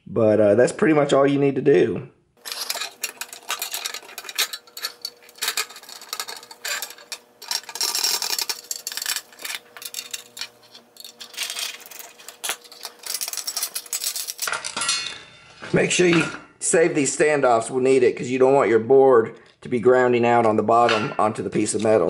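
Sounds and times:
pliers clicking and scraping metal: 0:02.4 - 0:15.0
parts rattling on metal plate: 0:02.4 - 0:15.4.

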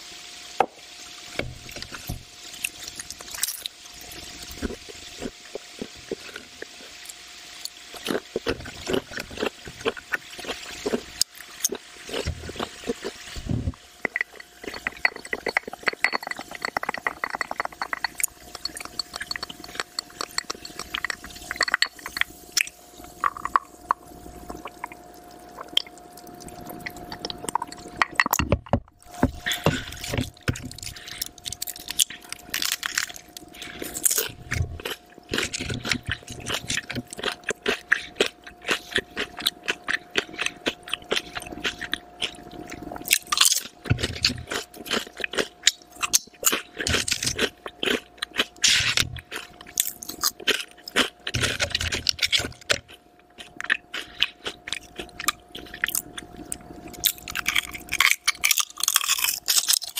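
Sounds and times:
crunchy chewing of chips: 0:01.4 - 0:59.9.

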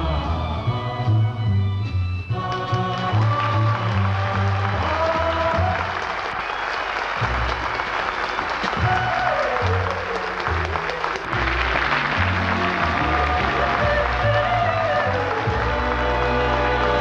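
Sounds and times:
sitcom theme music: 0:00.0 - 0:06.1, 0:07.2 - 0:17.0
studio audience applause: 0:02.4 - 0:17.0.

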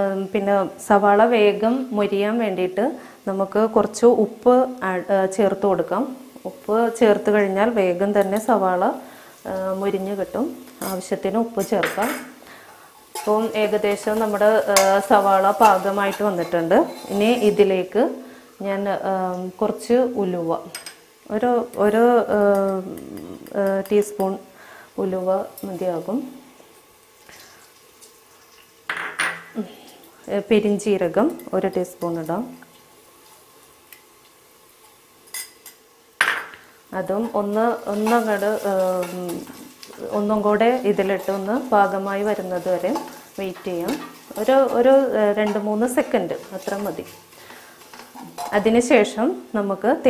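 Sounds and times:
woman speaking: 0:00.0 - 0:12.3, 0:13.2 - 0:20.7, 0:21.3 - 0:24.4, 0:37.0 - 0:47.2, 0:48.5 - 0:50.0
onions sizzling: 0:00.0 - 0:50.0.

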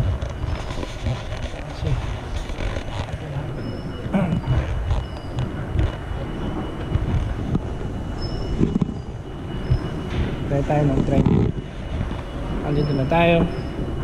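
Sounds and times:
faint high squeals: 0:00.0 - 0:14.0
subway train rumbling: 0:00.0 - 0:14.0.

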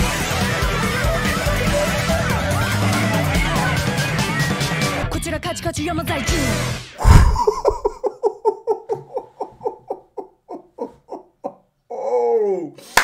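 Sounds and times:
loud low thump: 0:07.0 - 0:07.9
man laughing heartily: 0:07.0 - 0:12.5.

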